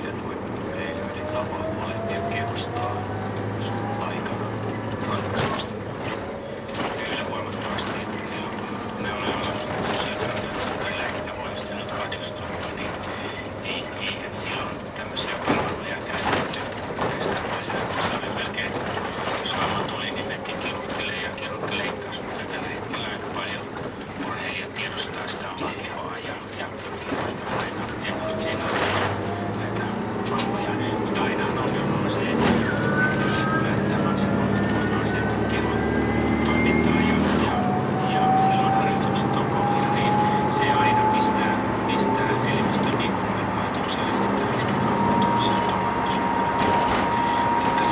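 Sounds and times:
bus body rattling and clicking: 0:00.0 - 0:38.0, 0:38.6 - 0:47.9
bus drivetrain whine: 0:00.0 - 0:47.9.

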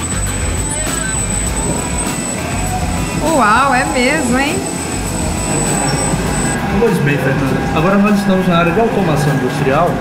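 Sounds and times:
high steady whine: 0:00.0 - 0:09.2
conveyor mechanical rumble: 0:00.0 - 0:10.0.

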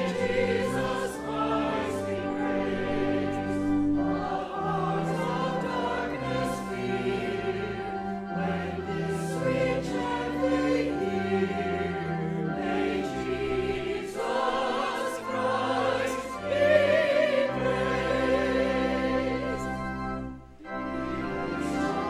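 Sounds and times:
choir singing: 0:00.0 - 0:22.0
organ sustaining low notes: 0:00.0 - 0:22.0.

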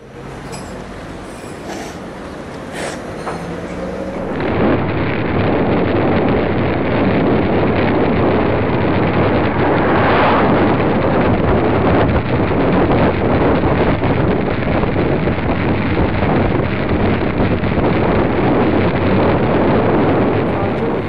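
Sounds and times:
wind rushing over microphone: 0:03.6 - 0:21.0.

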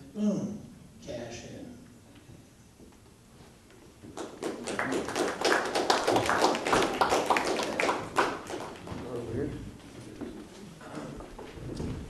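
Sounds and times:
audience applauding: 0:04.1 - 0:09.0.

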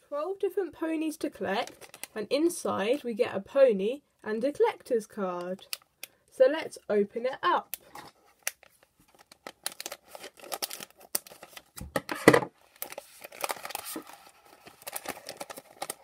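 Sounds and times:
foil bag tearing and crinkling: 0:08.5 - 0:11.8, 0:12.7 - 0:16.0.

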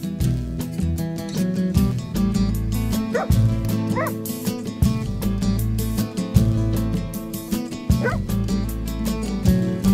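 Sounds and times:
background music with steady beat: 0:00.0 - 0:09.9
dog barking: 0:03.1 - 0:04.2, 0:08.0 - 0:08.3.

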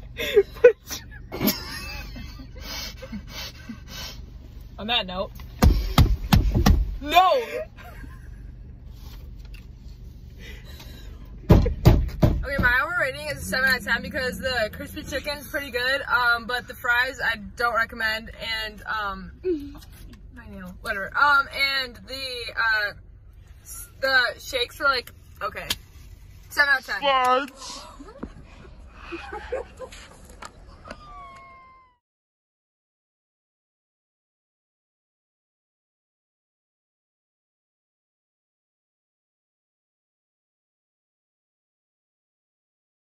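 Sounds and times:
sharp knocks: 0:05.6 - 0:07.0, 0:11.5 - 0:12.7.

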